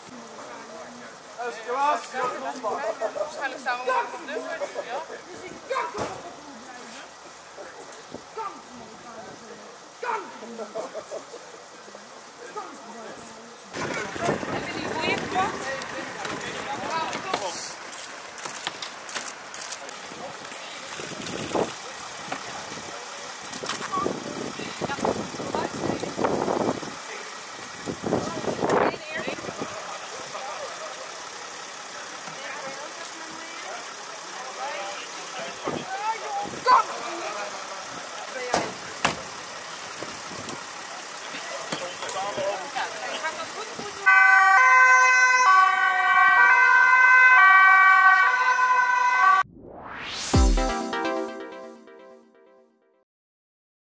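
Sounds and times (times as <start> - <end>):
voices: 0.0 - 49.1
street background noise: 0.0 - 49.5
electronic jingle music: 49.4 - 53.0.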